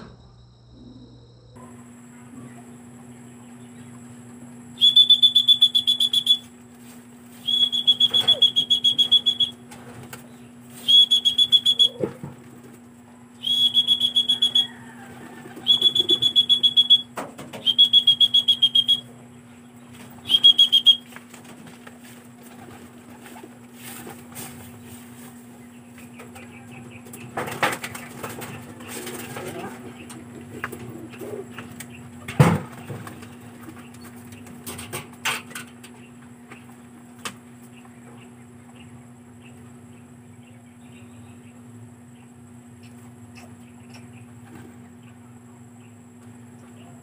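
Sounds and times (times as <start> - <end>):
pea whistle trilling blasts: 4.8 - 6.5, 7.4 - 9.6, 10.8 - 12.0, 13.4 - 14.9, 15.6 - 19.1, 20.2 - 21.1.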